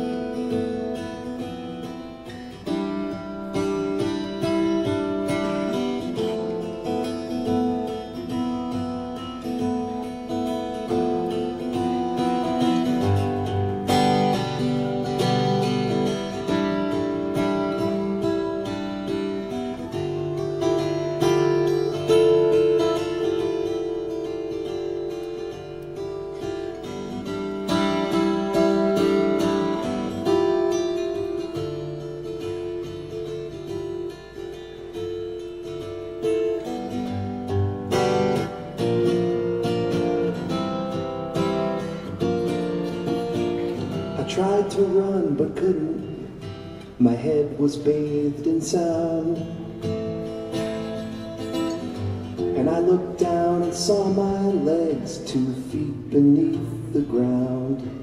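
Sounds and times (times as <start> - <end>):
acoustic guitar notes: 0.0 - 58.0.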